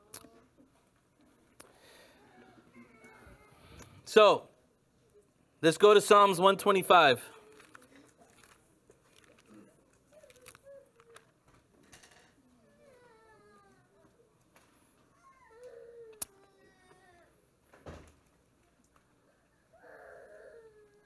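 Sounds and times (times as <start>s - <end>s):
faint whining cries: 1.8s - 4.0s, 12.4s - 17.6s, 19.2s - 21.0s
book pages rustling: 7.4s - 11.4s
thump: 17.8s - 18.1s.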